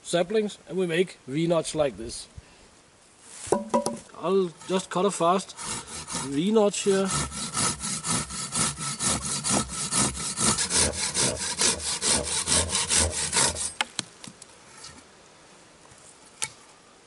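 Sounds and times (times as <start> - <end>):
pruning saw cutting wood: 4.6 - 13.9.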